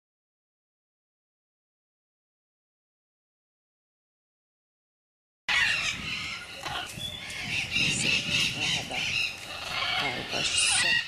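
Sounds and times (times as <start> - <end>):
parrots calling harshly: 5.5 - 11.0.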